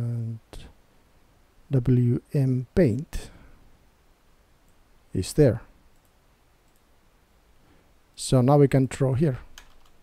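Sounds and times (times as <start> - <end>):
computer mouse clicks: 5.9 - 6.9, 9.5 - 10.0.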